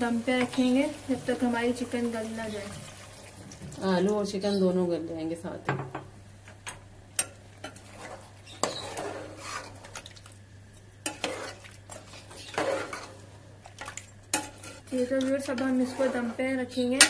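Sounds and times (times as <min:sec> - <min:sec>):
spoon stirring curry in pot: 0:06.6 - 0:10.3, 0:11.0 - 0:17.0.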